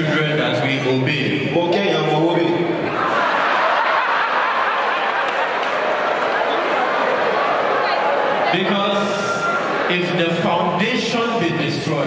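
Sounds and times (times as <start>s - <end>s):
audience laughing: 2.8s - 8.8s.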